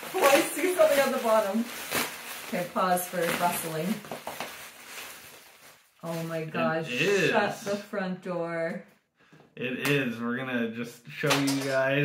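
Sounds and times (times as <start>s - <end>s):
plastic wrapping crinkling: 0.0s - 6.6s.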